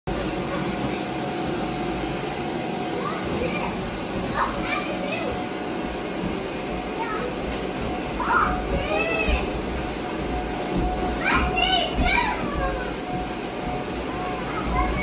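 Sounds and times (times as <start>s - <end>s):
children shouting: 8.2s - 9.5s, 11.1s - 13.1s.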